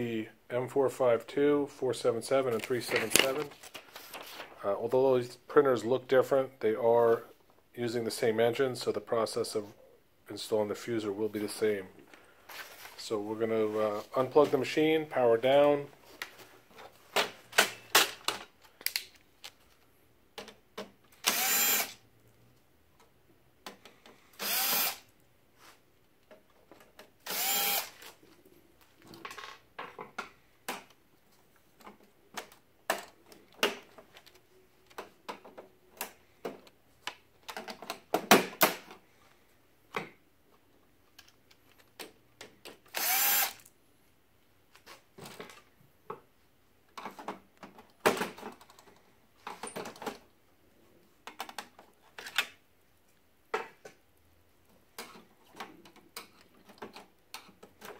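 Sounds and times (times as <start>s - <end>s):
plastic parts clicking and knocking: 17.2s - 21.2s, 31.8s - 39.0s, 46.9s - 50.4s, 51.2s - 52.6s, 54.7s - 57.9s
cordless drill spinning: 21.2s - 22.0s, 24.4s - 25.1s, 27.2s - 28.1s, 42.9s - 43.7s.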